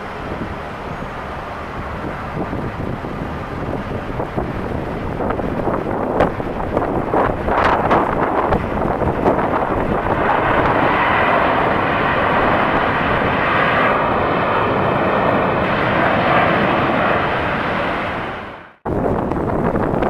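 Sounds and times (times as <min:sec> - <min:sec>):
faint high whine: 0:00.0 - 0:02.4
jet engines running: 0:00.0 - 0:20.0.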